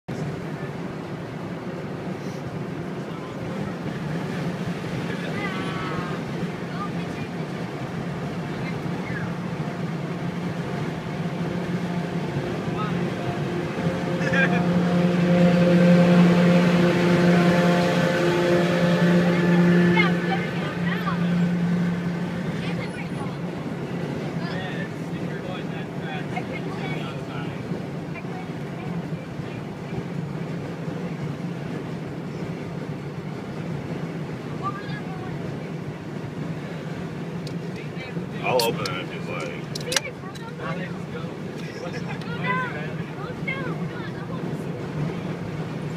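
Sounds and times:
car engine drone: 0.1 - 45.9
road noise inside car: 0.1 - 45.9
steady stacked tones: 7.5 - 24.4.

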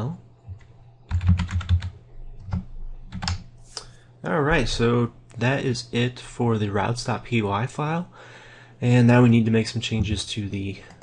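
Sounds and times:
keyboard typing: 0.5 - 3.5.

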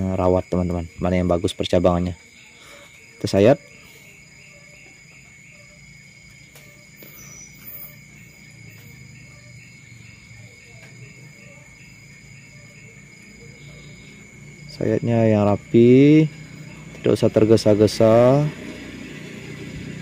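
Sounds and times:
crickets trilling: 0.0 - 20.0.

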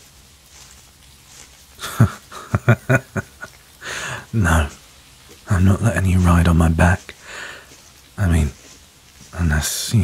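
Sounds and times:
man chuckling: 1.8 - 4.3
man breathing: 3.8 - 4.3, 7.1 - 7.9.

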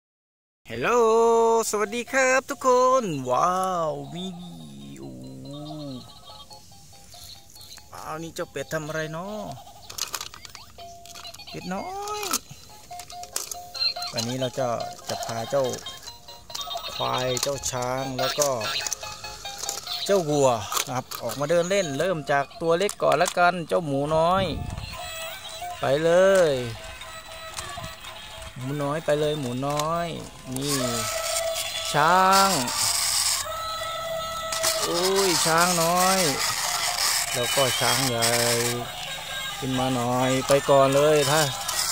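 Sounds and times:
electronic beeping tune: 1.7 - 9.4, 10.3 - 16.0
plastic gears whirring: 8.7 - 41.9.

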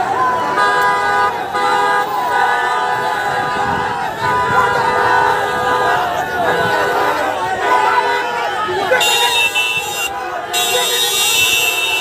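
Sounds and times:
crowd shouting: 0.0 - 12.0
vehicle horns blasting: 0.3 - 12.0.

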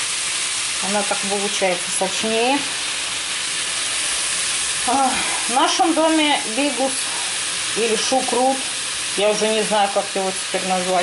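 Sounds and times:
meat and vegetables sizzling in oil: 0.0 - 11.0.

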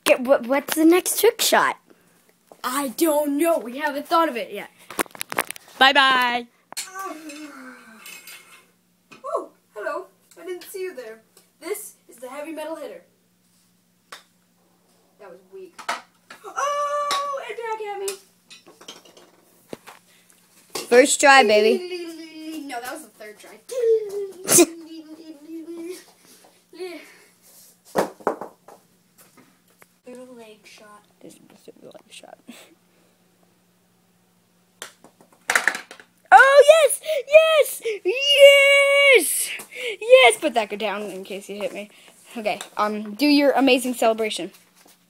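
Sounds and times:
person shouting excitedly: 36.3 - 40.4.

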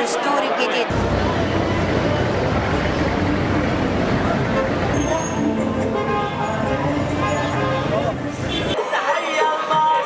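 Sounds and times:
crowd voices: 0.0 - 10.0
traffic noise: 0.0 - 10.0.

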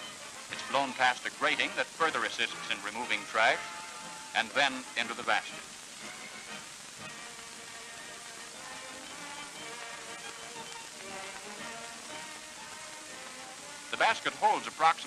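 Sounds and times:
film soundtrack hiss: 0.0 - 15.0
quiet music of held notes: 0.0 - 15.0.

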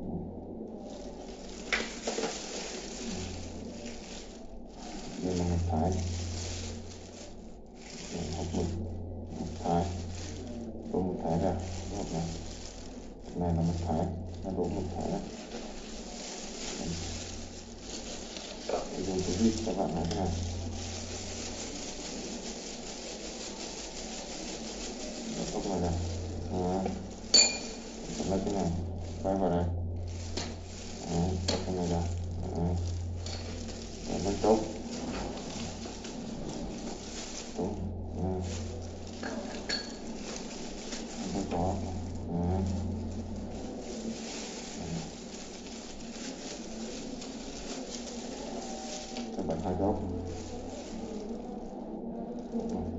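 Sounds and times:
gloved hands rubbing plastic: 0.0 - 52.9
steady low buzz: 0.0 - 52.9
plastic parts clicking and rustling: 0.8 - 8.2.

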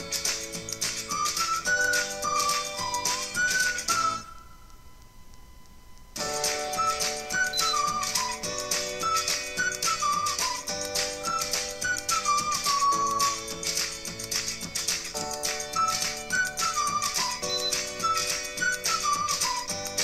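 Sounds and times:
music from small speaker: 0.0 - 20.0.

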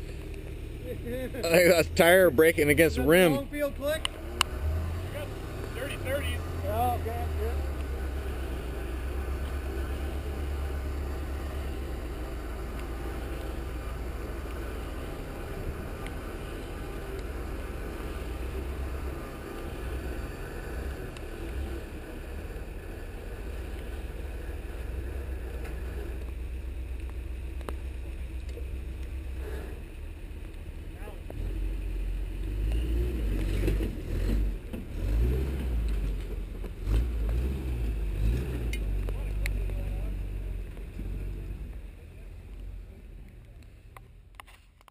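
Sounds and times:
truck engine running at low revs: 0.0 - 44.9.

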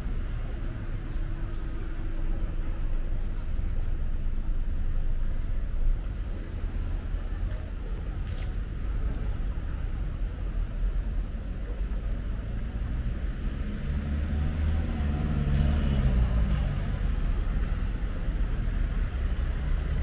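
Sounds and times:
low traffic rumble: 0.0 - 20.0
cars driving past: 11.0 - 20.0.

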